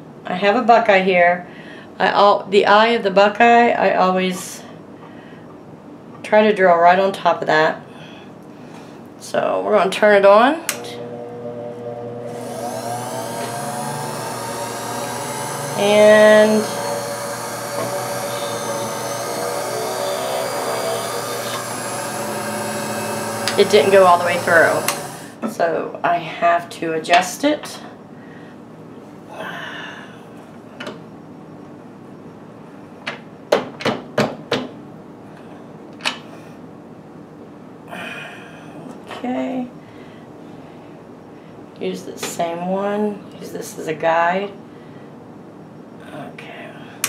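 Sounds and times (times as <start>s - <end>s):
drill press motor whine: 10.7s - 25.4s.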